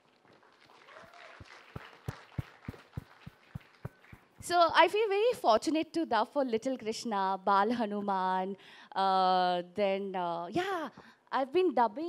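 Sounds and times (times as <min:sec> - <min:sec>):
audience applauding: 0:00.4 - 0:04.4.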